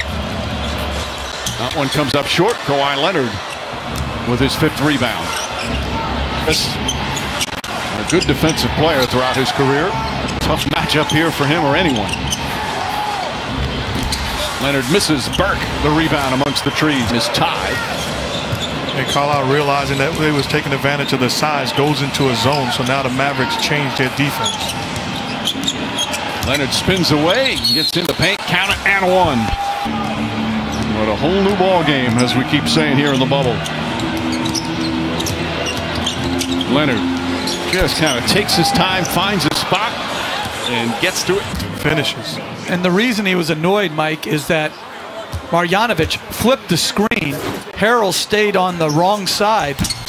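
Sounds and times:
low arena hum: 0.0 - 43.0
arena music: 22.0 - 42.3.

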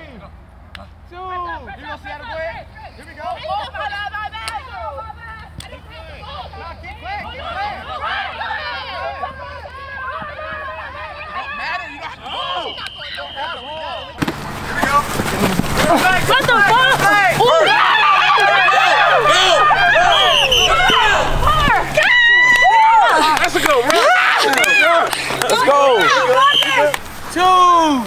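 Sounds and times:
people talking over one another: 1.1 - 28.0.

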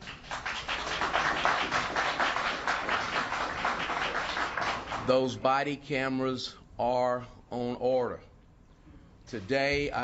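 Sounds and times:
people clapping: 0.0 - 5.4.

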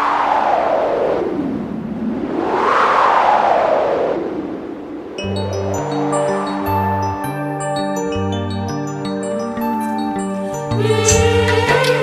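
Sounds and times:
wind-like whoosh: 0.0 - 7.3
song backing music: 5.2 - 12.0.

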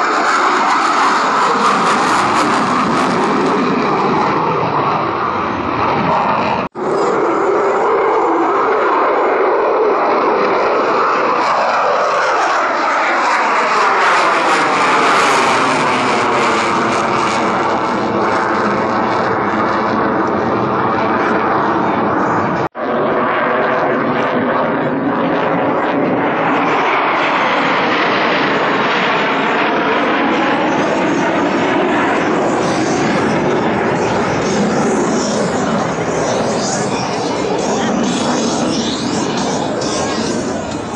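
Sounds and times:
fighter jets passing overhead: 0.0 - 40.9.

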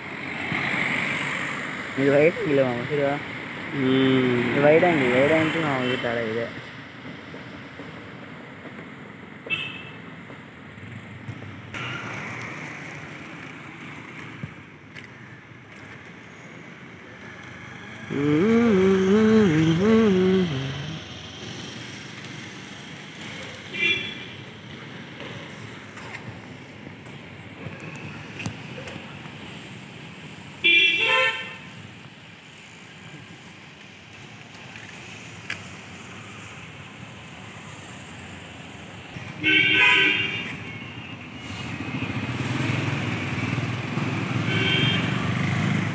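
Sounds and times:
vehicle horn toot: 39.4 - 40.9, 44.5 - 45.1.

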